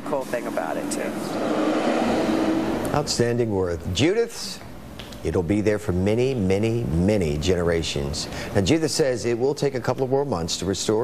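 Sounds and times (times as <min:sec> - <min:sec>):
heavy vehicle rumble: 0:00.0 - 0:03.6
street traffic passing: 0:00.0 - 0:03.7.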